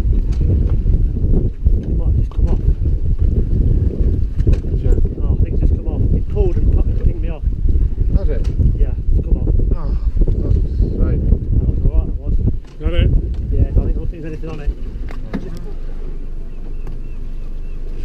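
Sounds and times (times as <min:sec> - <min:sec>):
constant low rumble: 0:00.0 - 0:18.0
wind buffeting microphone: 0:00.0 - 0:18.0
voices talking: 0:08.1 - 0:17.9.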